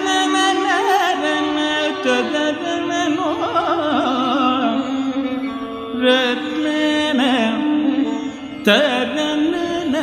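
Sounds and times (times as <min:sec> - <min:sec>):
ornamented melodic phrases: 0:00.0 - 0:10.0.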